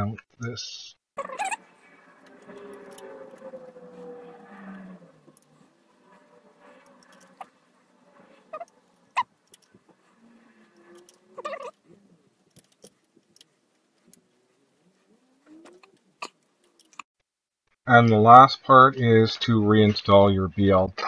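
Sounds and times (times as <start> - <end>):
small parts rattling: 12.4 - 14.1.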